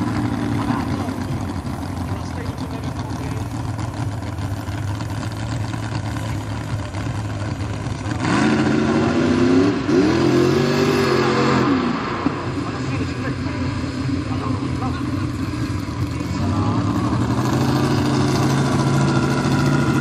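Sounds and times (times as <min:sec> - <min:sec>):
truck engine revving: 0:00.0 - 0:20.0.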